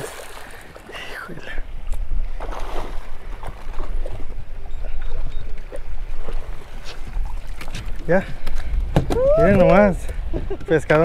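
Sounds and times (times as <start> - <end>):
water splashing: 0.0 - 1.5, 2.3 - 4.4
wind rumble on microphone: 1.8 - 11.0.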